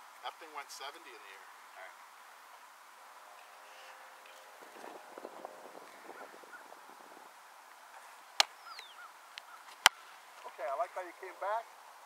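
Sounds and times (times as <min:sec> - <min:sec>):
faint bird chirps: 0:08.1 - 0:10.1
smaller smack of ball: 0:09.8 - 0:10.0.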